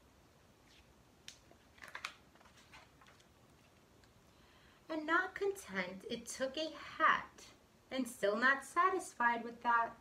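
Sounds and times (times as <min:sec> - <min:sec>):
book pages turning: 0:00.6 - 0:03.9.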